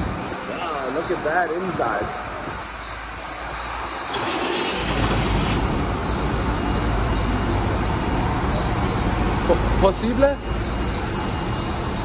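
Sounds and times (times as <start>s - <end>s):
diesel engine idling: 3.1s - 12.0s.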